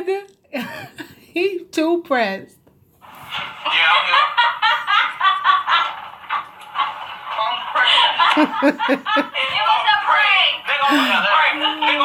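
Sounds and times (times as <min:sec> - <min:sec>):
people laughing hard: 0:03.6 - 0:09.6.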